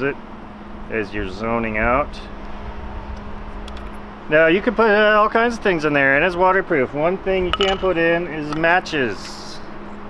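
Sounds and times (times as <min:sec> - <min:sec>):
faint steady hum: 0:00.0 - 0:10.0
low background rumble: 0:00.8 - 0:09.8.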